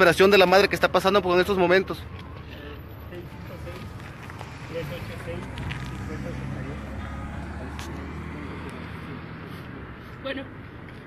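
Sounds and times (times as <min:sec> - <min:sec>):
vehicle engine humming: 0:01.2 - 0:11.0.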